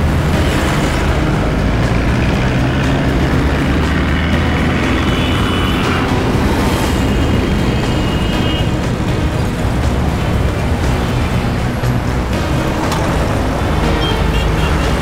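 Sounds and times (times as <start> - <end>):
background music score: 0.0 - 15.0
road traffic rumble: 0.0 - 15.0.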